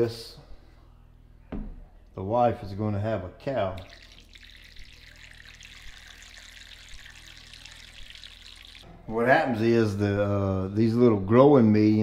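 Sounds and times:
water trickling from watering can: 3.8s - 8.9s.

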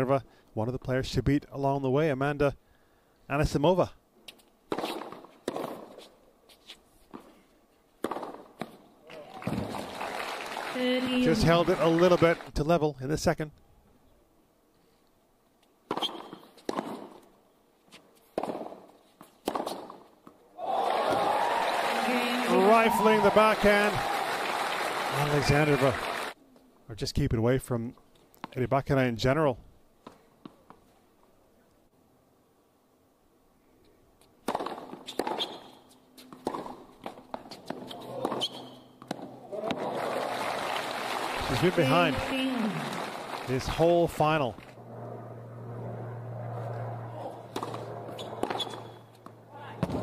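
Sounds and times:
tennis ball hit by rackets: 4.7s - 6.0s, 8.0s - 8.8s, 15.9s - 17.2s, 18.4s - 18.8s, 19.4s - 20.4s, 34.4s - 35.7s, 36.3s - 39.9s, 47.5s - 50.0s
crowd applause: 9.2s - 12.5s, 20.6s - 26.4s, 39.5s - 44.0s.

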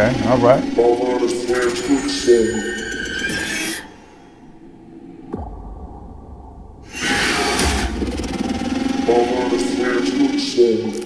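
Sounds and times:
low dark drone: 0.0s - 11.0s
loud rushing surge: 3.8s - 10.0s
deep rumble: 4.4s - 11.0s
sudden hit: 5.2s - 9.8s.

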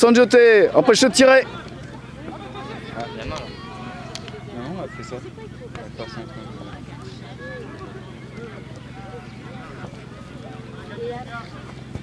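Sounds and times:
distant footballers calling out: 0.0s - 12.0s.

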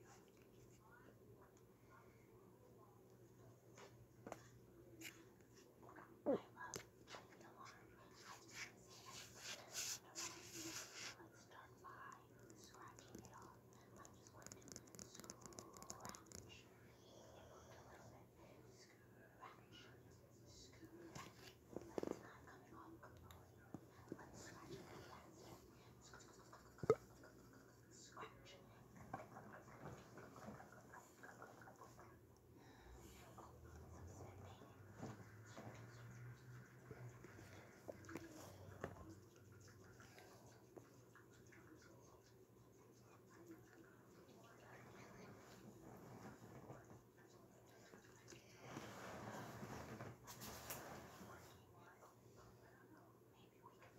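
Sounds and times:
faint whispering: 0.0s - 53.9s
plastic cup scratching and rustling: 8.4s - 11.2s.

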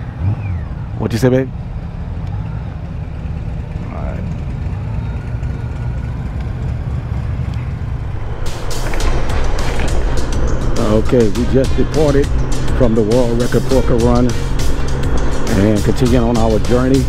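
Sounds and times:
motorcycle engine low rumble: 0.0s - 17.0s
wind buffeting microphone: 5.8s - 17.0s.

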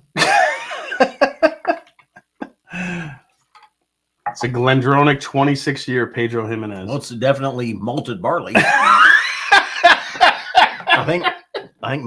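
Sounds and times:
man laughing loudly: 0.2s - 3.0s, 8.5s - 11.8s.

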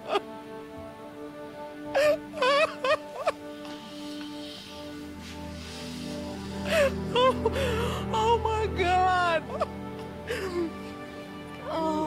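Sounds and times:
slow sad background music: 0.0s - 12.0s
woman wailing and sobbing: 1.9s - 3.4s, 6.6s - 11.0s, 11.6s - 12.0s.

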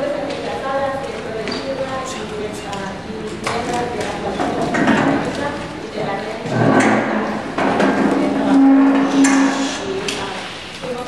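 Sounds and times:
woman's voice over microphones: 0.0s - 11.0s
long held hum: 5.0s - 11.0s.

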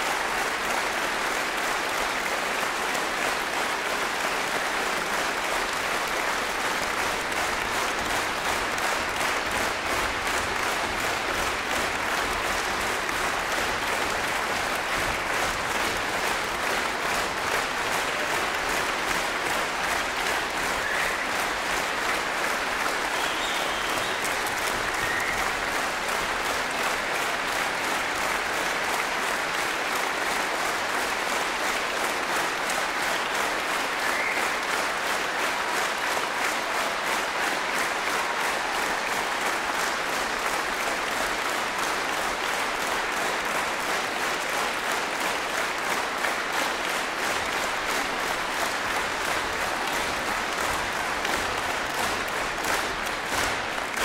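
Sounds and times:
audience clapping in rhythm: 0.0s - 54.0s.

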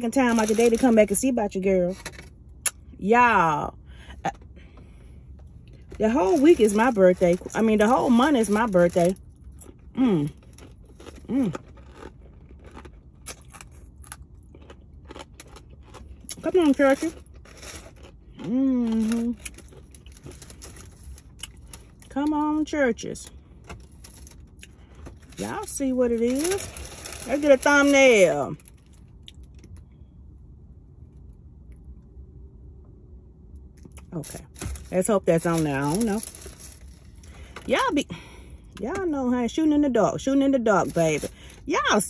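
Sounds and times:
car interior hum: 0.0s - 42.0s
person chewing crunchy food: 9.2s - 16.5s, 17.1s - 22.1s.

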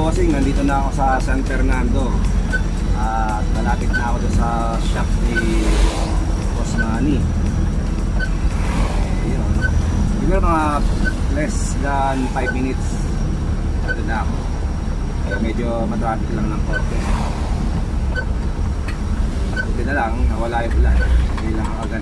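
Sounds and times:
man talking: 0.0s - 2.3s, 2.9s - 7.3s, 9.1s - 13.2s, 13.8s - 14.4s, 15.2s - 17.1s, 19.7s - 22.0s
van engine and road rumble: 0.0s - 22.0s.

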